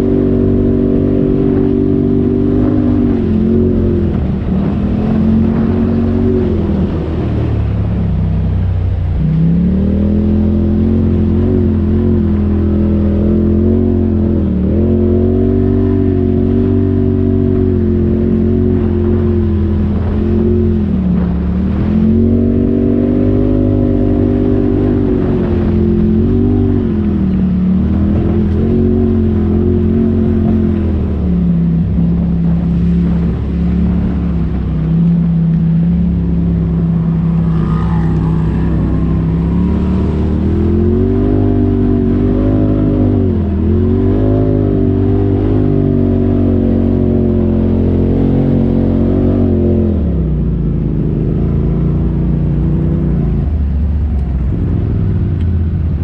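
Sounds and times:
engine revving: 0:00.0 - 0:56.0.

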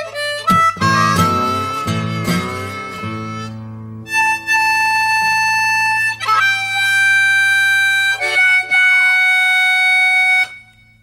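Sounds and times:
harmonica long high note: 0:00.0 - 0:11.0.

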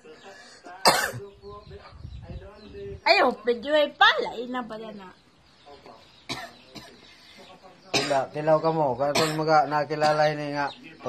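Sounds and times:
quiet voices: 0:00.0 - 0:11.0
person coughing: 0:00.8 - 0:01.2, 0:08.0 - 0:08.3.

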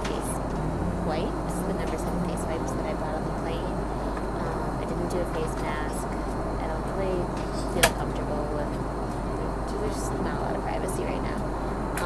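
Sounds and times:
airliner cabin noise: 0:00.0 - 0:12.0.

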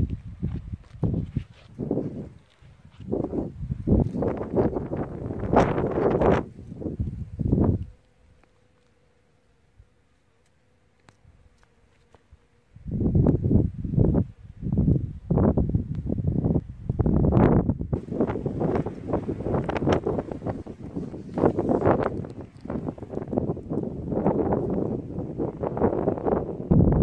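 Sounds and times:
wind buffeting microphone: 0:00.0 - 0:08.0, 0:12.8 - 0:27.0.

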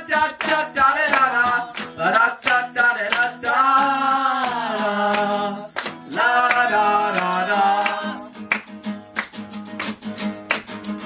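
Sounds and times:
wordless singing: 0:00.0 - 0:08.4
acoustic guitar: 0:00.0 - 0:11.0
hand claps: 0:00.0 - 0:11.0.

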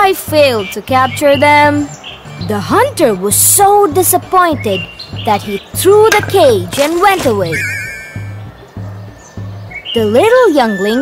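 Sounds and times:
background music with low bass: 0:00.0 - 0:11.0
warbling whistle-like high tone: 0:07.5 - 0:08.3.

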